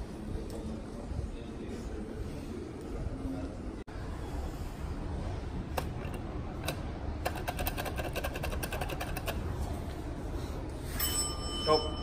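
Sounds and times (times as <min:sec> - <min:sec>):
fast mechanical clicks: 0:05.8 - 0:09.5.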